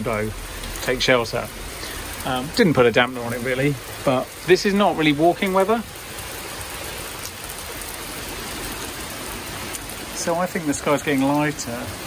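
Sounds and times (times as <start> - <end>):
heavy rain on tarmac: 0.0 - 12.0.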